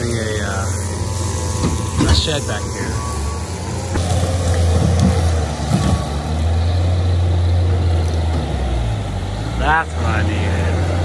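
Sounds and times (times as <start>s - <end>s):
diesel engine running under load: 0.0s - 11.0s.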